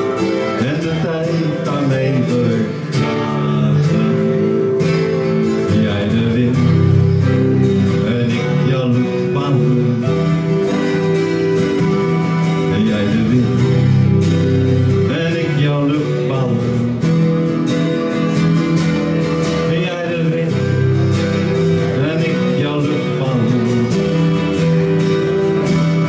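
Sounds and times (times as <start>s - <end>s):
acoustic guitar strummed chords: 0.0s - 26.0s
electric guitar lead melody: 0.0s - 26.0s.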